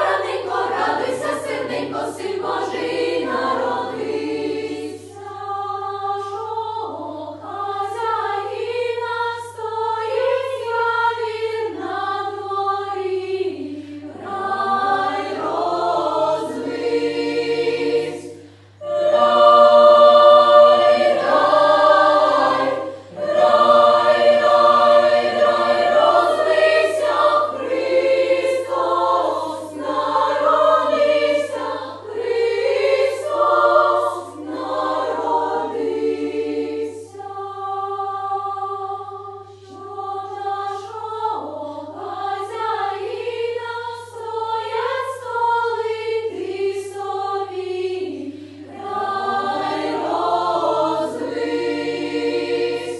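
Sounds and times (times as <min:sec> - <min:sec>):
children's choir singing a carol: 0:00.0 - 0:52.9
steady low hum: 0:00.0 - 0:52.9.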